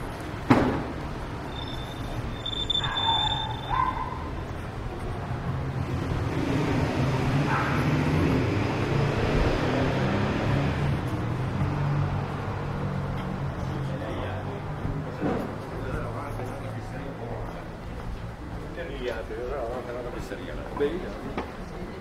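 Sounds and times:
street noise: 0.0 - 22.0.

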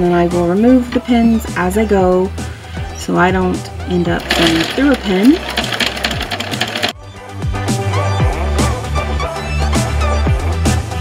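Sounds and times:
sewing machine stitching: 4.2 - 7.0.

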